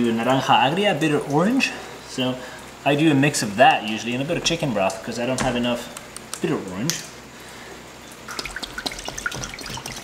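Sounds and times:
liquid dripping: 8.0s - 10.0s
liquid pouring into glass dish: 8.3s - 10.0s.

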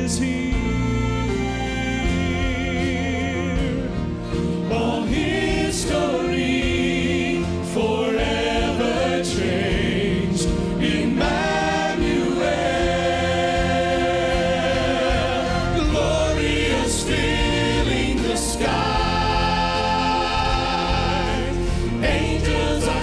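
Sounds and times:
man singing with vibrato: 0.0s - 5.2s, 14.0s - 23.0s
orchestral accompaniment: 0.0s - 23.0s.

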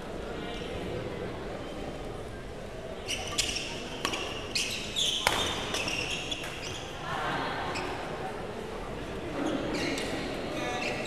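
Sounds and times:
shoes squeaking on court floor: 3.0s - 7.0s, 9.4s - 11.0s
rackets hitting shuttlecock: 4.0s - 4.4s, 5.2s - 6.7s.

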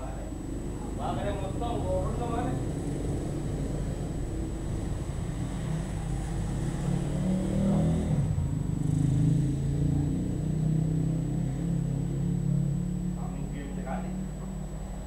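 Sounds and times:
vehicle engine running: 8.3s - 15.0s.

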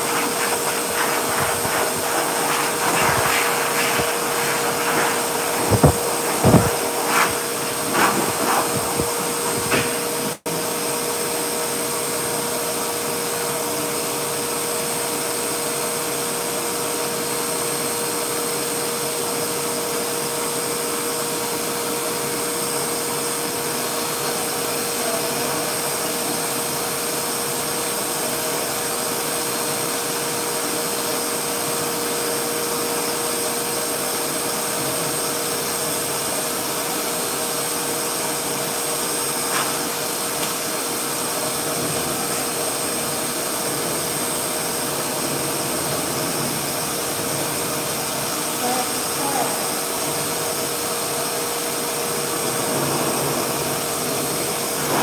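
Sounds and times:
blow dryer running: 0.0s - 12.9s, 21.5s - 55.0s.

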